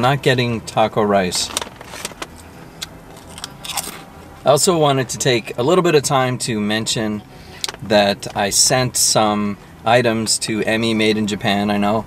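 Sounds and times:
chip bag crinkling: 3.1 - 4.1.

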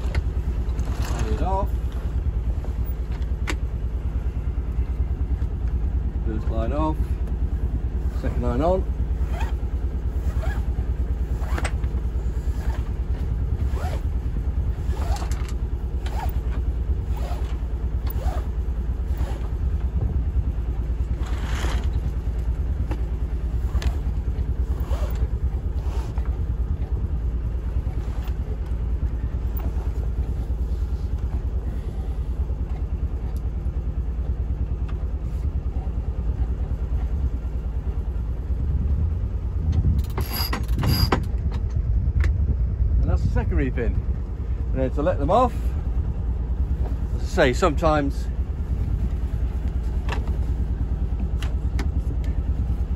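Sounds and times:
boat engine droning: 0.0 - 41.4, 43.6 - 52.9.

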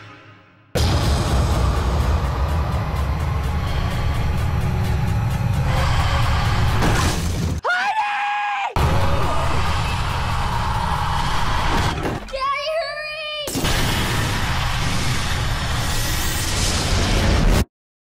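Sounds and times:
horror trailer score: 0.0 - 7.6, 8.7 - 12.4, 13.4 - 17.7.

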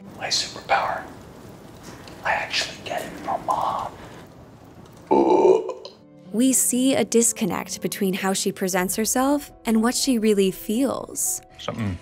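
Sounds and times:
person making throaty vocal sound: 5.1 - 6.0.

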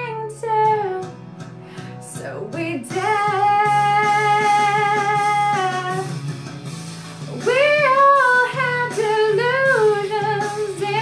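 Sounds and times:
woman singing a ballad: 0.0 - 6.2, 7.2 - 11.0
instrumental accompaniment: 0.2 - 11.0.

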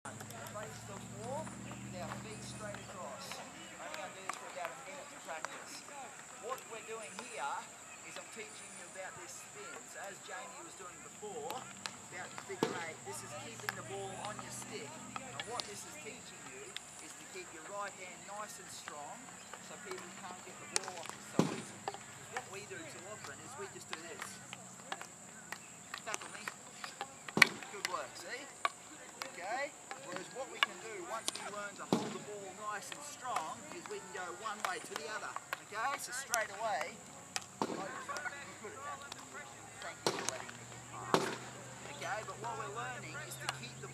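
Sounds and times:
children calling and chattering: 0.0 - 43.9
hockey sticks tapping balls: 0.1 - 43.9.

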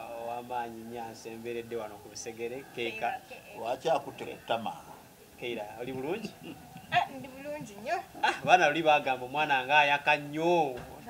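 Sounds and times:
man laughing: 6.1 - 7.1, 8.2 - 8.7.

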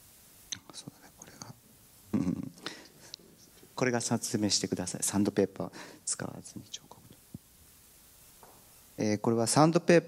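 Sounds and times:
person whispering: 0.5 - 1.6, 6.0 - 7.2.

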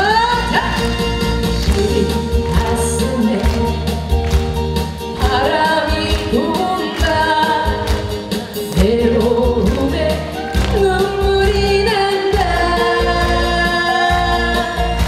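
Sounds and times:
woman singing into a microphone: 0.0 - 0.9, 1.6 - 3.8, 5.2 - 15.0
pop music with beat and bass: 0.0 - 15.0.

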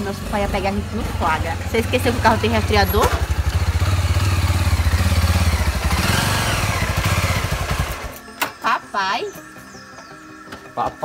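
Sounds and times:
motorcycle engine running: 0.0 - 8.4.

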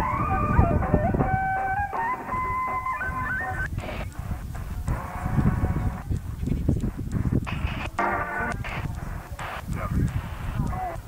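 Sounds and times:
crackling radio static: 0.0 - 11.0
garbled radio station audio: 0.0 - 11.0
radio music: 0.0 - 11.0.

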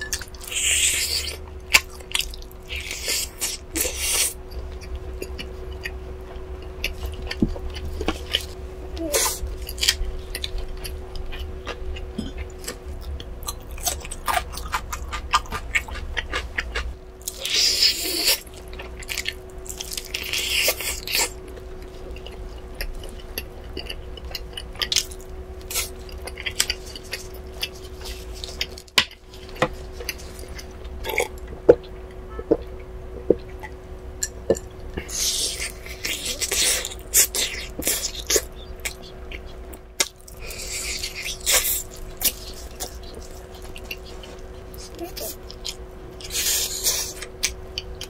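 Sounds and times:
faint steady hum: 0.0 - 48.0.

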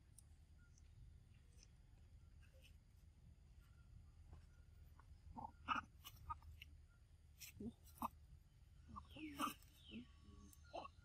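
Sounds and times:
young monkeys squeaking and grunting: 5.3 - 6.6, 7.4 - 11.0.

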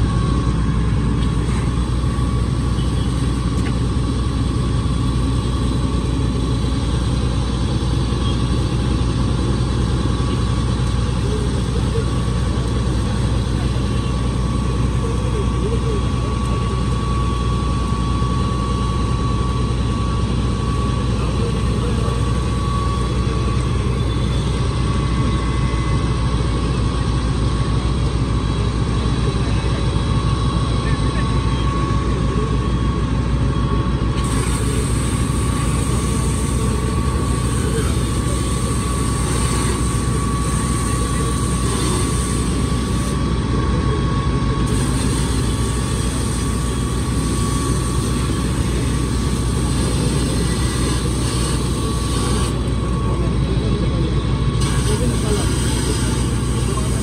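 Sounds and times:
thin steady whine: 0.0 - 57.0
vehicle engine idling: 0.0 - 57.0.

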